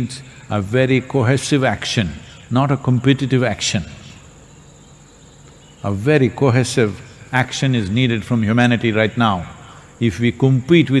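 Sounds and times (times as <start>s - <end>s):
man speaking: 0.0s - 4.2s, 5.8s - 11.0s
cricket trilling: 0.0s - 11.0s.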